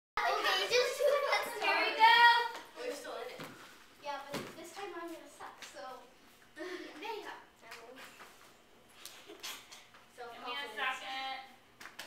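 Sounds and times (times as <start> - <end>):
girls talking and calling out: 0.2 - 8.2.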